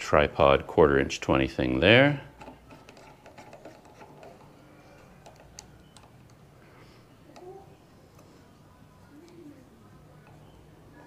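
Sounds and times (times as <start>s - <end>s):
faint clicks from screwing: 2.3s - 6.5s, 7.2s - 11.0s.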